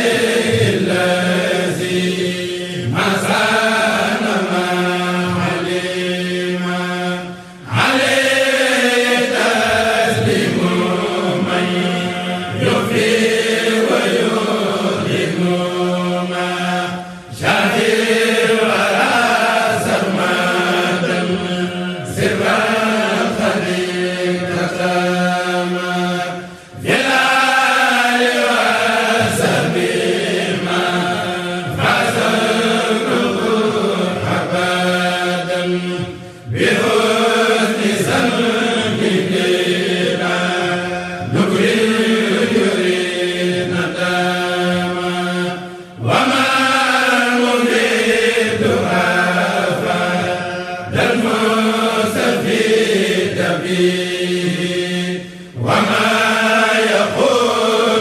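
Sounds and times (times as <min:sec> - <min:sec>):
men chanting: 0:00.0 - 0:58.0.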